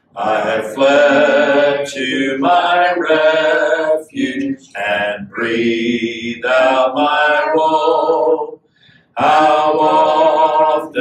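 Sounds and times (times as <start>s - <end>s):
man singing a hymn: 0.2s - 8.2s, 9.2s - 11.0s.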